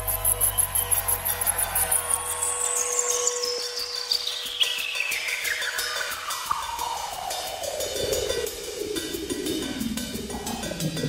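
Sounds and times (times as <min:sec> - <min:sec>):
low bass drone: 0:00.0 - 0:02.8
fast hi-hat ticking: 0:00.0 - 0:11.0.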